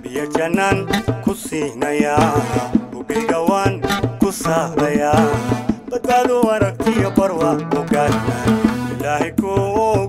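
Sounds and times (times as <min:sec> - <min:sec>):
hand drum beat: 0:00.0 - 0:10.0
oud and organ melody: 0:02.2 - 0:09.4.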